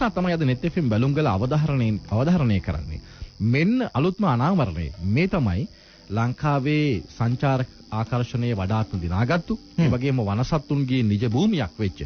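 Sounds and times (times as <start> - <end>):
person speaking: 0.0 - 12.0.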